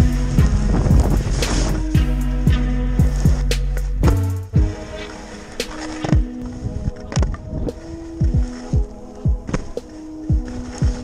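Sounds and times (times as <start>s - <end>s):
held synth notes: 0.0s - 11.0s
deep kick drum: 2.0s - 4.7s.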